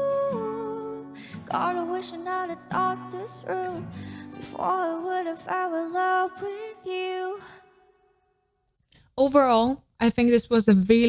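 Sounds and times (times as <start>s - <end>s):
woman singing a soft ballad: 0.0s - 7.8s.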